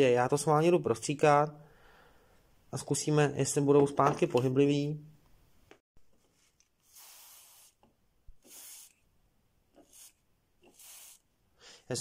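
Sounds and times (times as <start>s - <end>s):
aerosol spray hisses: 6.8s - 7.8s, 8.4s - 9.0s, 9.8s - 11.3s.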